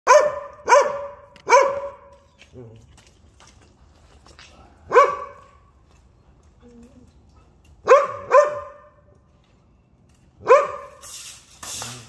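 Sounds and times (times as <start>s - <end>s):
dog barking with echo: 0.1s - 2.1s, 4.9s - 5.5s, 7.8s - 9.0s, 10.4s - 11.0s.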